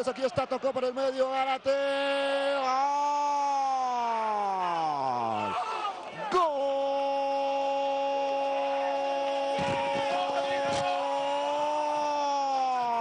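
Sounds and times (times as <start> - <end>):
commentator shouting long goal cry: 1.6 - 13.0.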